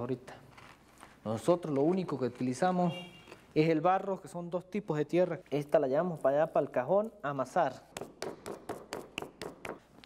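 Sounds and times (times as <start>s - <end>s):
hands slapping wet clay: 7.9s - 9.8s.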